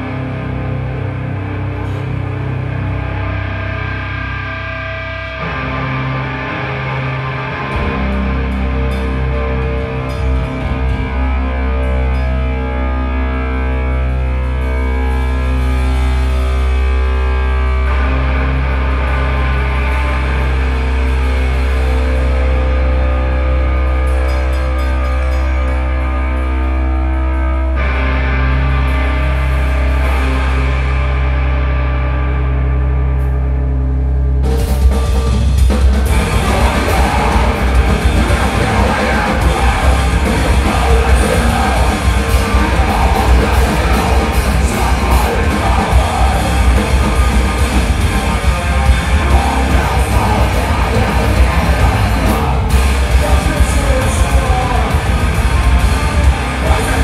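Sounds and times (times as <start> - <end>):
electric guitar: 0.0 - 57.0
rock band playing live: 0.0 - 57.0.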